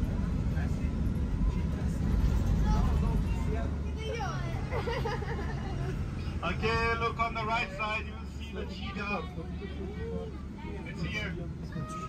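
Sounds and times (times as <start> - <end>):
engine and road rumble: 0.0 - 12.0
passengers' voices: 0.0 - 12.0.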